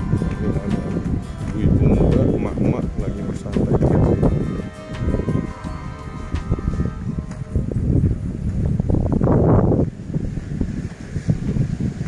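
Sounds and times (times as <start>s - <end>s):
faint music: 0.0s - 11.3s
wind buffeting microphone: 0.0s - 12.0s.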